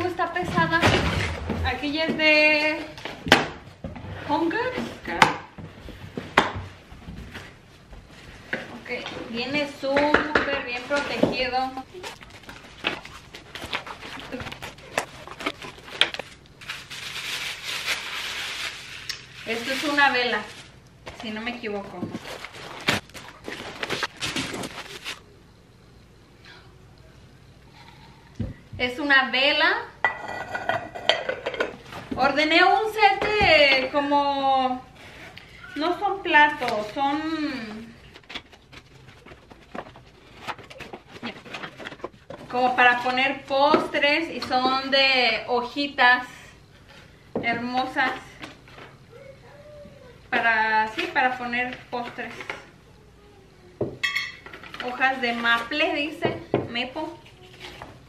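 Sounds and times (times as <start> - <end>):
paper packing rustling: 10.8 - 25.4, 38.0 - 43.2.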